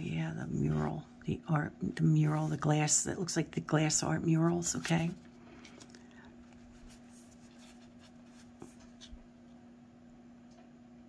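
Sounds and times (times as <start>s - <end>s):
steady low hum: 0.0s - 11.0s
cards sliding and rubbing: 4.5s - 5.9s, 6.5s - 9.2s.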